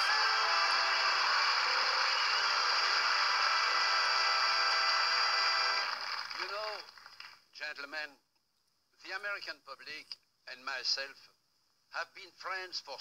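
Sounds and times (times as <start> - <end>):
audience applauding: 0.0 - 7.4.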